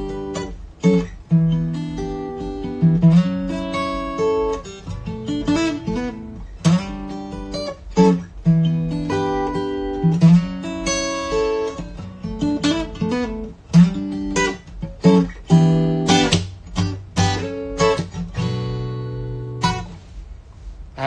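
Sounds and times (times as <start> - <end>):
acoustic guitar played slowly: 0.0 - 21.0.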